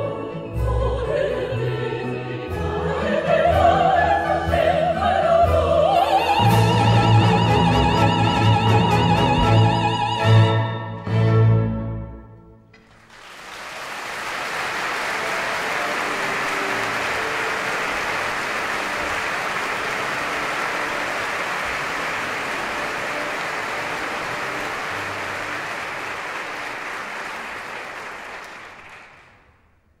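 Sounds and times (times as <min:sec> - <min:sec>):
audience applauding: 0:12.7 - 0:29.6.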